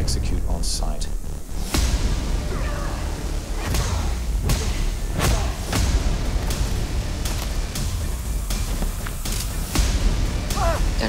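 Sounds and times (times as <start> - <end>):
deep music rumble: 0.0 - 11.0.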